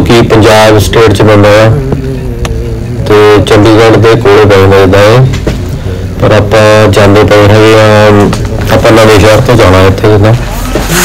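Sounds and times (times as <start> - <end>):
man talking: 0.0 - 5.4, 6.1 - 10.4
car driving hum: 0.0 - 11.0.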